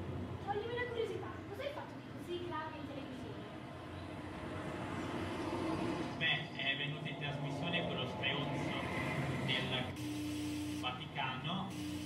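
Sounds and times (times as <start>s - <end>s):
steady hum: 6.0s - 12.0s.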